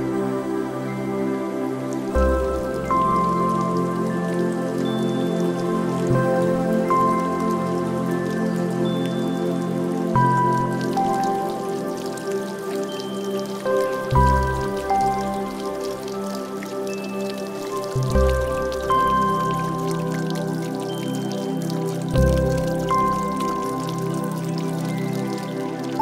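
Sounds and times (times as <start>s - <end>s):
calm music of sustained chords: 0.0s - 26.0s.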